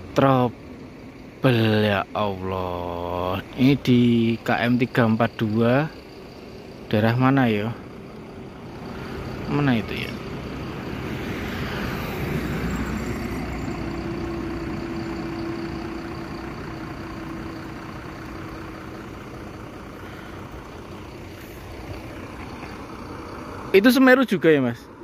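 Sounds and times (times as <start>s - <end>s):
highway traffic: 0.0s - 25.0s
vehicle passing on highway: 5.3s - 25.0s.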